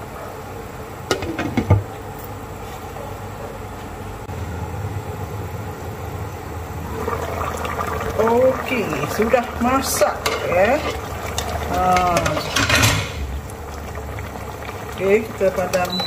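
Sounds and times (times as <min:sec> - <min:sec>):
stew bubbling at a boil: 0:04.6 - 0:16.0.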